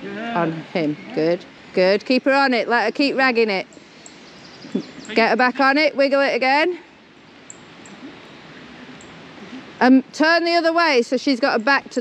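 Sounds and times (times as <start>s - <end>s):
outdoor background hiss: 0.0s - 12.0s
faint high ticks: 7.4s - 8.0s.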